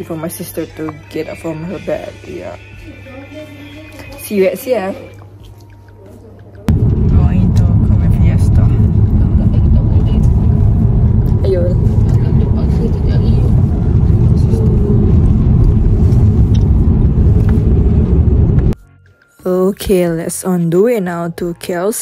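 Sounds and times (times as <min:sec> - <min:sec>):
car road and engine rumble: 0:06.7 - 0:18.8.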